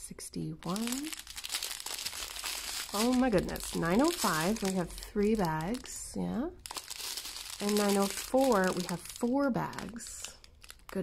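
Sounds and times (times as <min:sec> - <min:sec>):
plastic bags crinkling: 0:00.6 - 0:11.0.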